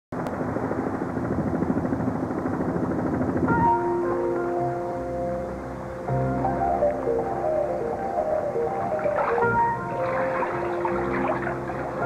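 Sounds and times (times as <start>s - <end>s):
helicopter rotor beating: 0.2s - 5.8s, 7.6s - 12.0s
music with held tones: 3.5s - 12.0s.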